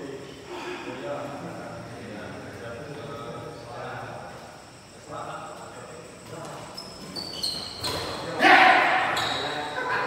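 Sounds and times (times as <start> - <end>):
shoe squeaks on court: 6.5 - 8.3, 9.0 - 9.8
loud shout: 8.4 - 9.2.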